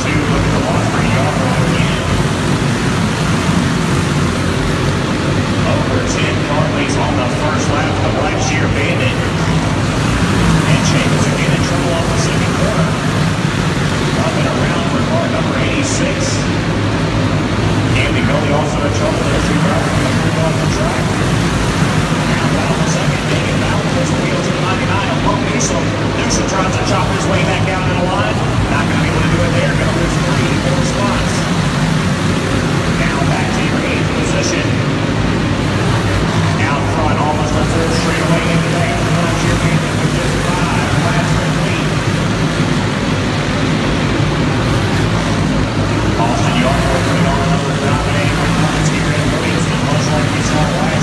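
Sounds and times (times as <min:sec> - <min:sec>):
crowd voices: 0:00.0 - 0:51.0
kart engines droning: 0:00.0 - 0:51.0.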